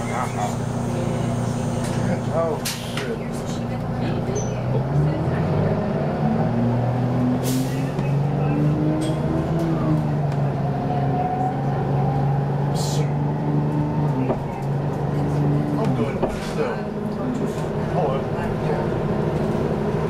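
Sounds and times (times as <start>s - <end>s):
bus diesel engine drone: 0.0s - 20.0s
short hisses of air: 7.4s - 7.9s.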